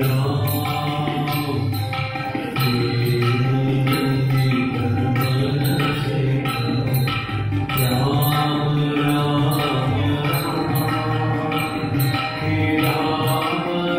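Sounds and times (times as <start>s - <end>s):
rhythmic drum beat: 0.0s - 13.9s
group singing devotional chant: 7.8s - 13.9s.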